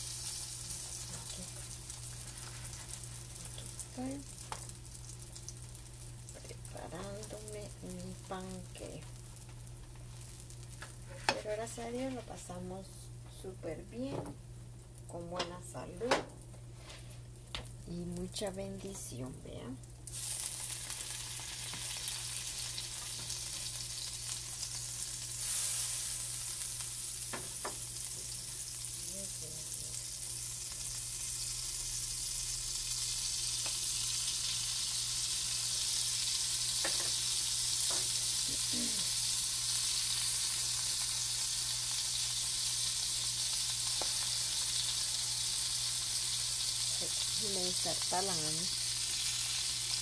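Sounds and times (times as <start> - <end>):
batter sizzling in a frying pan: 0.0 - 12.6, 19.8 - 50.0.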